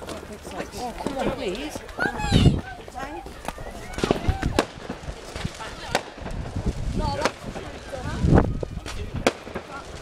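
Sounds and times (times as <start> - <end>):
fireworks bangs and cracks: 0.0 - 10.0.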